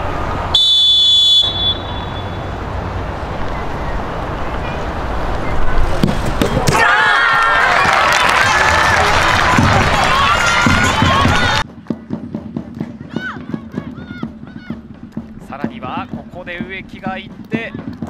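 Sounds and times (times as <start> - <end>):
crowd cheering and shouting: 6.5 - 11.6, 13.0 - 14.8.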